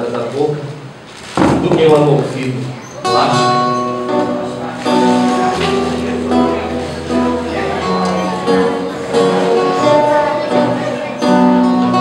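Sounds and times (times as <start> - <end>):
acoustic guitar playing: 1.3 - 12.0.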